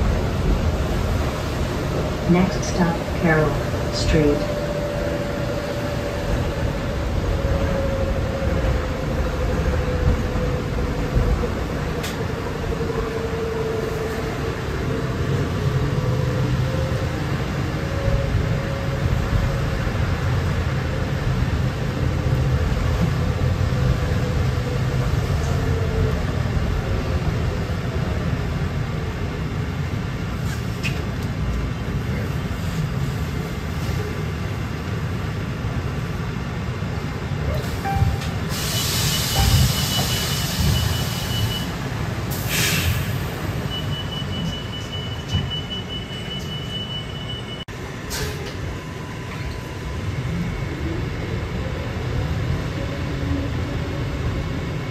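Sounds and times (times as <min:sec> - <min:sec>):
low rumble of the ride: 0:00.0 - 0:42.3.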